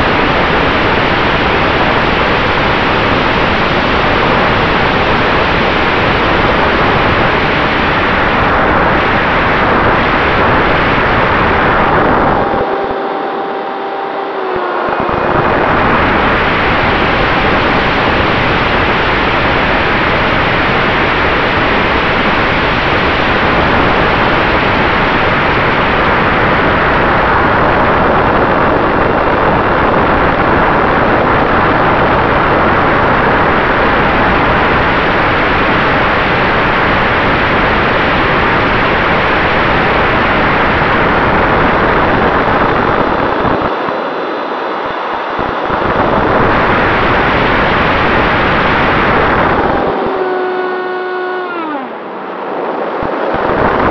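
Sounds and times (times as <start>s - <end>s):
ducted fan whine: 0.0s - 53.9s.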